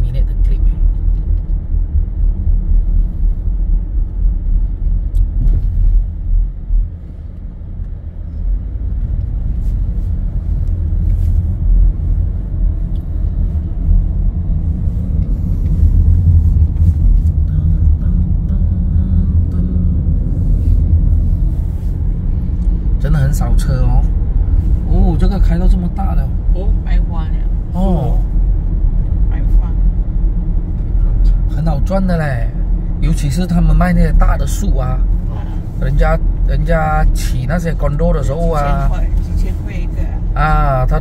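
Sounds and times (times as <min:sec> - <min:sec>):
car engine and tyres rumbling: 0:00.0 - 0:41.0.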